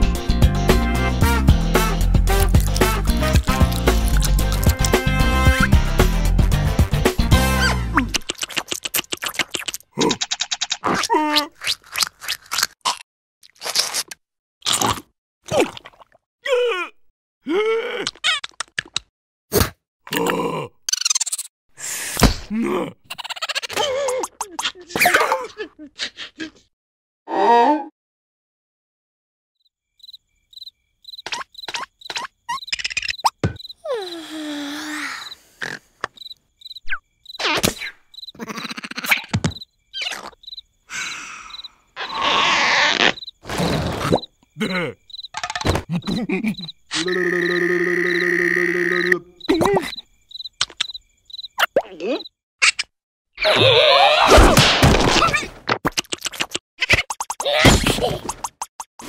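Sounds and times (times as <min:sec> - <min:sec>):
cartoon crunching bites: 0:02.2 - 0:05.2, 0:08.0 - 0:16.0, 0:55.8 - 0:57.6
cartoon squeaky vocal noises: 0:07.6 - 0:11.9, 0:17.9 - 0:18.8, 0:20.9 - 0:21.5, 0:23.0 - 0:26.7, 0:36.9 - 0:39.4, 0:40.0 - 0:40.4, 0:42.0 - 0:43.3, 0:45.8 - 0:50.0, 0:51.6 - 0:54.4, 0:55.2 - 0:58.6
cartoon character groaning: 0:16.4 - 0:18.2, 0:20.1 - 0:20.8, 0:22.5 - 0:23.1, 0:44.6 - 0:45.0, 0:45.9 - 0:49.9
crickets chirping: 0:29.8 - 0:52.4.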